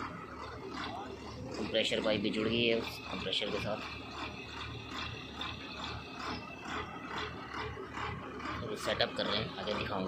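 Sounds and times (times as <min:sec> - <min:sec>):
drilling rig and compressor drone: 0:00.0 - 0:10.0.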